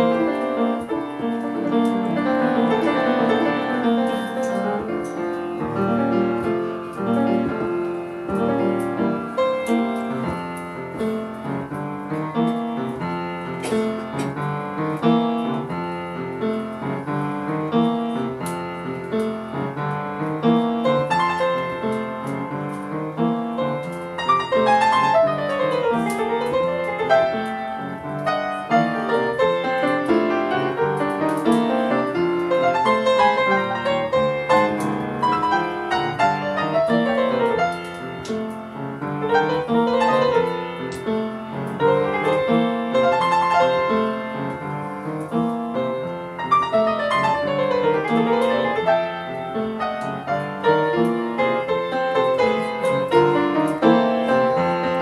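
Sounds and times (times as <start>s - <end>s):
solo upright piano: 0.0s - 55.0s.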